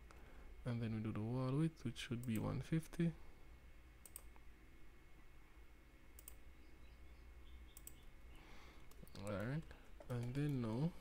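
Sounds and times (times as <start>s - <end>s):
faint low hum: 0.0s - 11.0s
computer mouse clicks: 2.2s - 2.5s, 4.0s - 4.5s, 6.1s - 6.4s, 7.7s - 8.1s, 8.8s - 10.9s.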